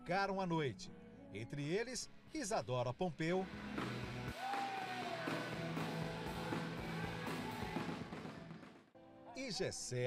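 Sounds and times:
gospel band with drums: 3.7 - 8.8.

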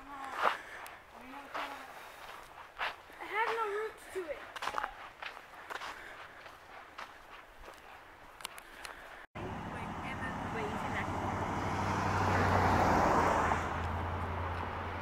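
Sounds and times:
footsteps on dirt trail: 0.0 - 9.3.

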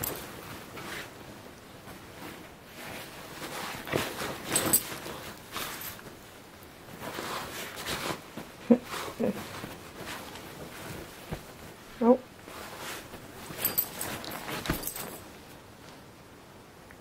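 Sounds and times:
bedding and fur rustling: 0.0 - 16.2.

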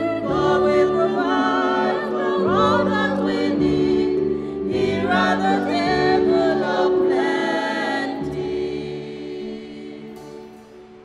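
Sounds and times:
small choir singing a hymn: 0.0 - 11.0.

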